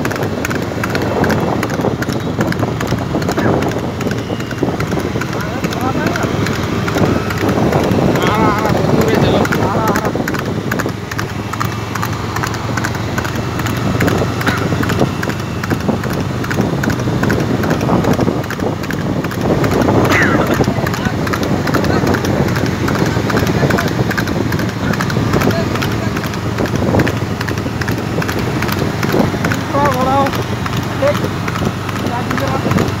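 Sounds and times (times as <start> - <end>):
hoofbeats on asphalt: 0.0 - 33.0
voices: 0.0 - 33.0.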